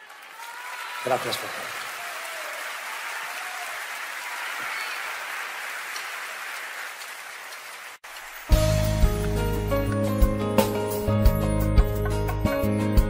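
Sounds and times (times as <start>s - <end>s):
audience applauding: 0.0s - 9.8s
instrumental music with bass: 8.6s - 13.0s.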